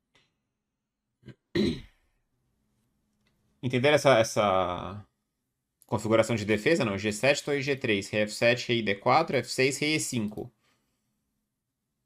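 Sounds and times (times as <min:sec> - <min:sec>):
man clearing his throat: 0:01.2 - 0:02.0.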